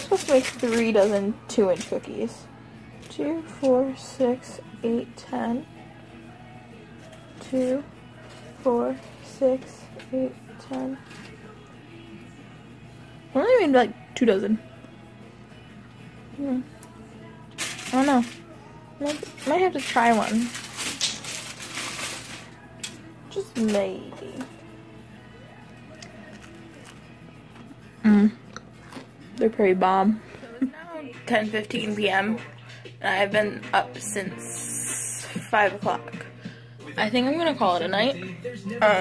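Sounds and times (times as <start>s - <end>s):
faint television music: 0.0s - 39.0s
woman humming approval: 28.0s - 28.4s.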